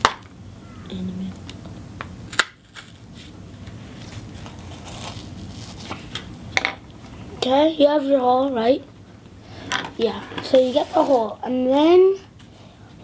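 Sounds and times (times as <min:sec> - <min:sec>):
pencil crunching cardboard: 0:02.6 - 0:06.3, 0:10.4 - 0:11.4.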